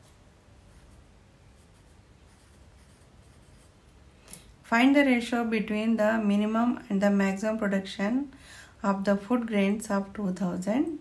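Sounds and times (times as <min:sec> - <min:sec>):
pencil scratching on paper: 0:00.6 - 0:04.0.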